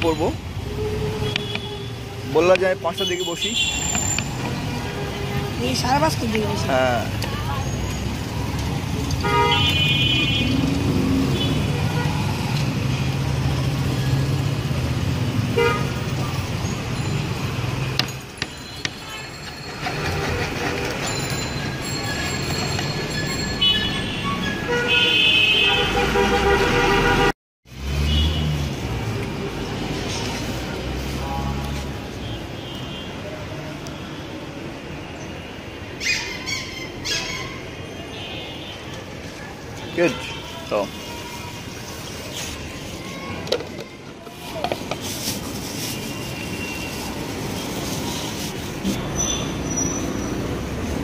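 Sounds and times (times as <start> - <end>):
street traffic engines: 0.0 - 51.0
vehicle horn tooting: 9.2 - 10.6, 23.6 - 27.3.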